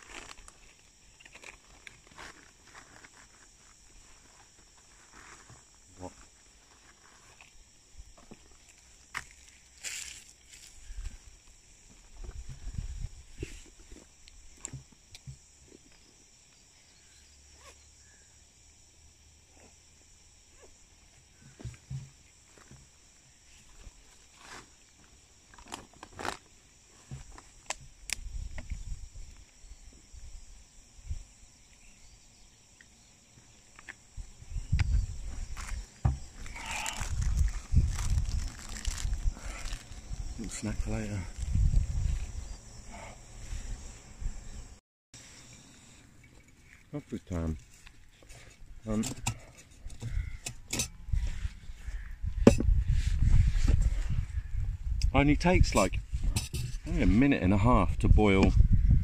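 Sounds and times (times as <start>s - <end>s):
wind buffeting microphone: 34.2s - 42.6s, 51.0s - 59.0s.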